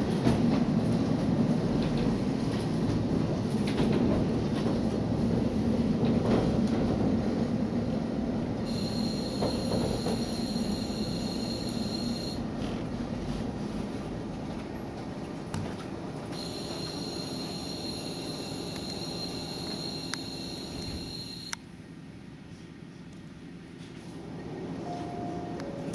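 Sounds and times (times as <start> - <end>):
railcar running rumble: 0.0 - 25.9
high brake squeal: 8.7 - 12.4, 16.3 - 21.6.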